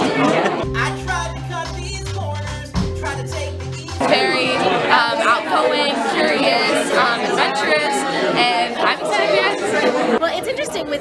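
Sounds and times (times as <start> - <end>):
voices chattering in large room: 0.0 - 11.0.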